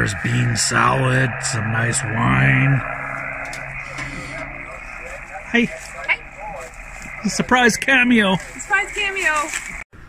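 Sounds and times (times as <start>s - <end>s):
radio static hiss: 0.0s - 9.9s.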